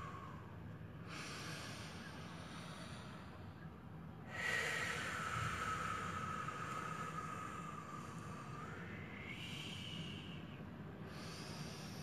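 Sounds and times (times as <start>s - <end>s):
man breathing in with whistle: 1.4s - 12.0s.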